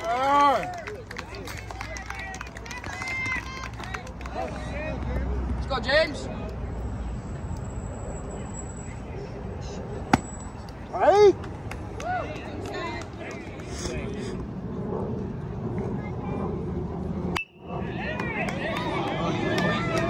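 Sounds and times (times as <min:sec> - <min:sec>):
bat cracking ball: 0:10.1 - 0:10.4.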